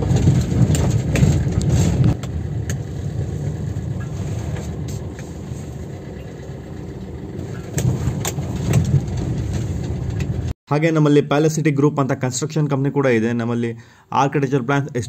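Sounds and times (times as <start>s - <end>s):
car engine and tyre rumble: 0.0s - 10.6s.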